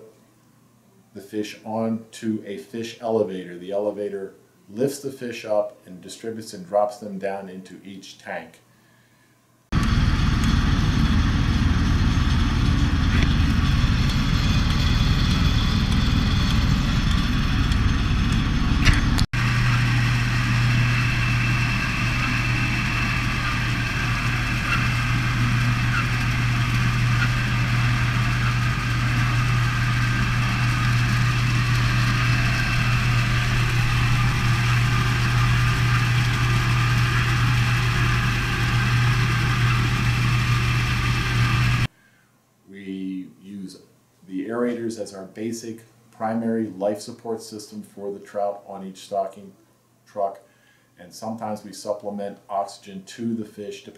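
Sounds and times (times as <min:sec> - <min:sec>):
truck low hum: 0:09.8 - 0:41.9.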